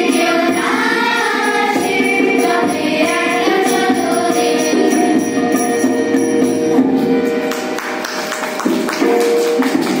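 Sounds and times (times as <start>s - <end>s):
children singing together: 0.0s - 5.6s
held melodic notes: 0.0s - 10.0s.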